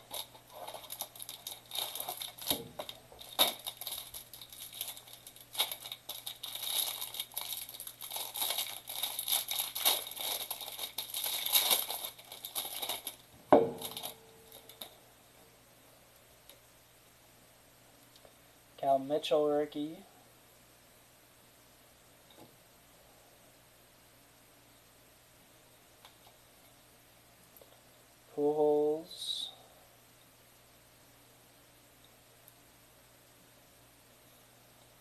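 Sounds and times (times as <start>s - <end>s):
plastic wrapper crinkling: 0.0s - 15.0s.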